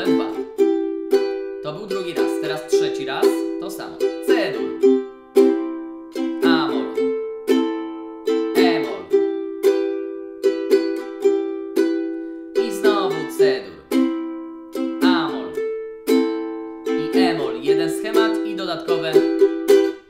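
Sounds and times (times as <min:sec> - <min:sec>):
ukulele strumming chords: 0:00.0 - 0:20.0.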